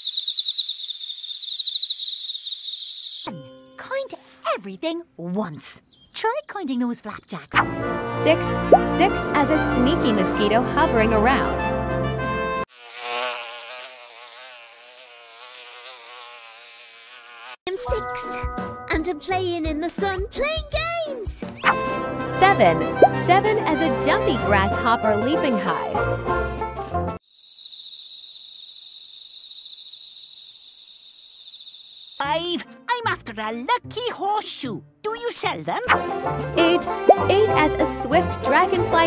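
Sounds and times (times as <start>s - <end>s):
mosquito buzzing: 0.0s - 3.3s, 12.6s - 17.6s, 27.2s - 32.2s
insect trilling: 0.0s - 3.4s, 27.2s - 32.2s
music: 7.6s - 12.6s, 17.7s - 27.2s, 32.2s - 34.8s, 35.8s - 39.0s.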